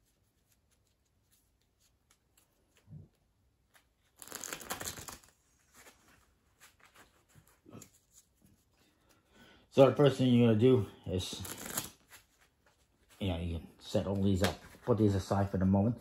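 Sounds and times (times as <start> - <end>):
cards being shuffled: 0.0 - 8.6, 11.2 - 13.3.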